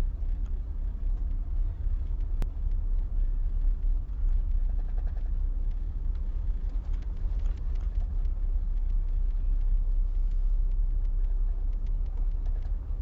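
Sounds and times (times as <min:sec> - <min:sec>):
low steady rumble: 0:00.0 - 0:13.0
faint clicks: 0:00.1 - 0:13.0.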